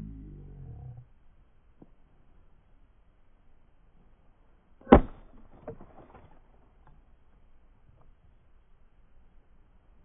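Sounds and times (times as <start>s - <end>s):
axe chopping log: 4.8s - 6.2s.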